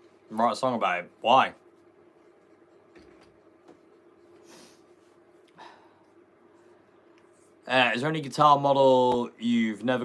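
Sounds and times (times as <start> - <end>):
faint steady hum: 0.0 - 10.0
soft breath through nose: 4.4 - 5.0.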